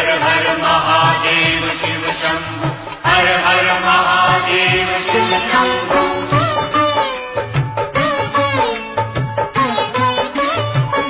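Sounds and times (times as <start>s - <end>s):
devotional chant with instruments: 0.0s - 7.7s.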